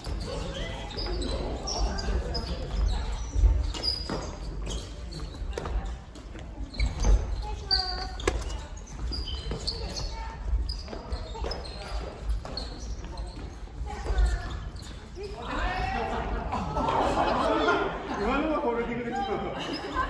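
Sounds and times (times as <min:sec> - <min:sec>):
sneakers squeaking on wooden floor: 0:00.0 - 0:16.3
voices chattering: 0:00.0 - 0:20.0.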